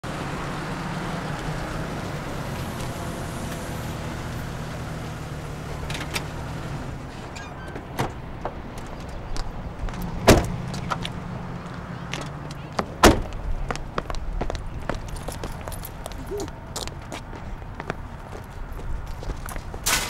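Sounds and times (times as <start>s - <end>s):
car door slamming: 10.2s - 10.6s, 13.0s - 13.3s.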